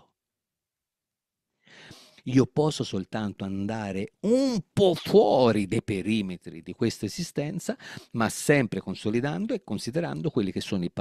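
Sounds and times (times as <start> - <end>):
man breathing in: 1.6 - 2.2, 7.8 - 8.1.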